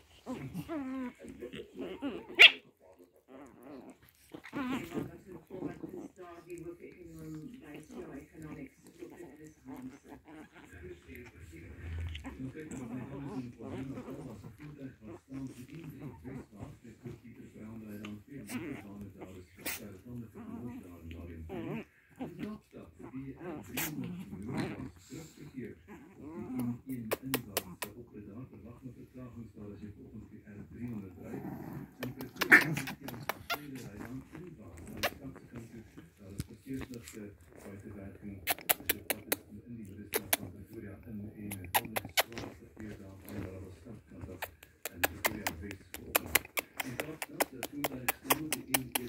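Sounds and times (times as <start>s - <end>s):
puppies vocalising while play-fighting: 0.0s - 29.2s, 30.6s - 49.0s.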